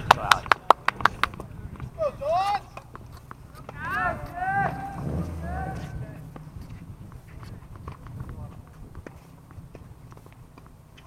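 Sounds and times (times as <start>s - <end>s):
footsteps on court: 0.7s - 11.0s
shoes squeaking on court: 1.8s - 11.0s.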